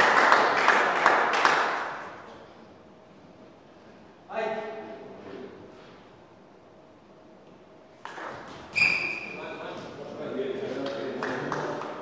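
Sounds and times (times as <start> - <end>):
spectators applauding: 0.0 - 2.1, 10.9 - 12.0.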